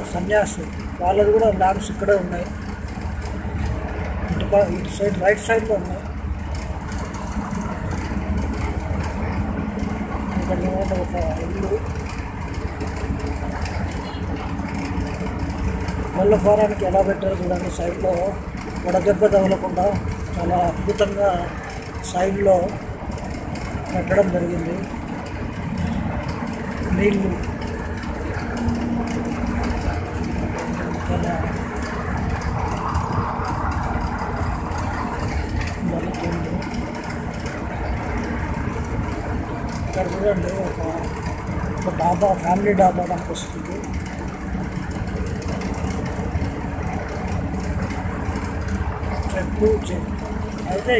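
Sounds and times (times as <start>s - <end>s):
vehicle engine and road noise: 0.0s - 50.9s.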